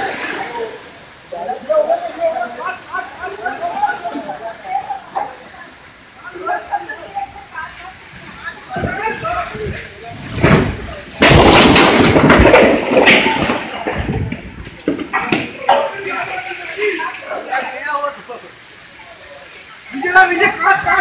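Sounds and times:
storm wind and rain: 0:00.0 - 0:21.0.

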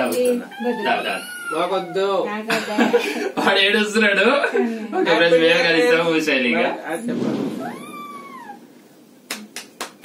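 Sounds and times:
high meow-like cry: 0:07.6 - 0:08.7.

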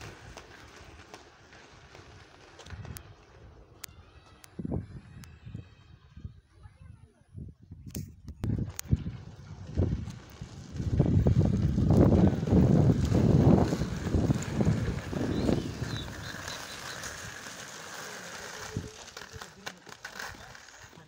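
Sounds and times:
wind buffeting microphone: 0:04.5 - 0:17.5.

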